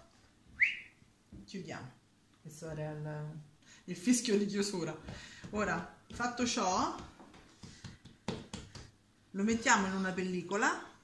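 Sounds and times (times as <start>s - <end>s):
hands patting dough on table: 4.6s - 10.0s.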